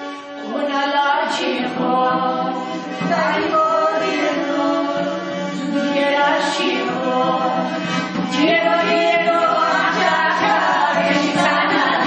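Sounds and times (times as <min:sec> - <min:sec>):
vocal ensemble singing folk song: 0:00.4 - 0:12.0.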